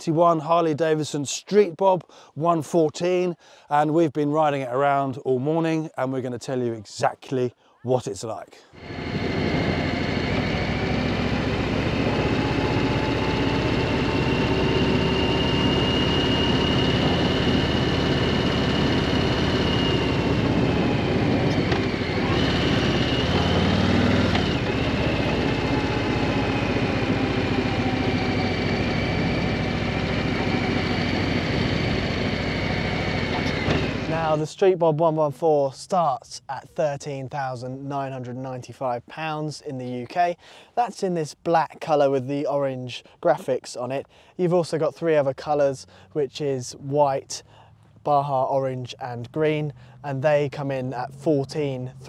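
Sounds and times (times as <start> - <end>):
motorcycle engine running: 8.8 - 34.1.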